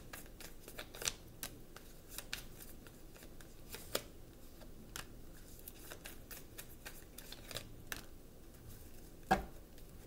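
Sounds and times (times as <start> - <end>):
cards being shuffled: 0.0 - 4.1, 4.9 - 8.1.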